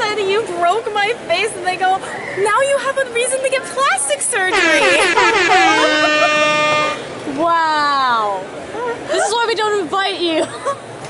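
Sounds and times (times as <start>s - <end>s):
high-pitched steady note: 4.5s - 7.2s
people laughing loudly: 4.6s - 7.0s.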